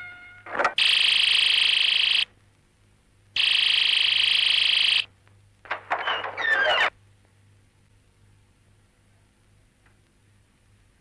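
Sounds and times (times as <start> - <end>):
electric bell ringing: 0.0 - 0.9.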